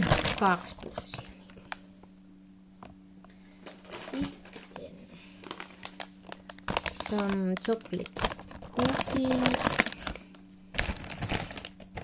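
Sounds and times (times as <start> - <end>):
plastic packaging crinkling: 0.0 - 2.1, 2.8 - 12.0.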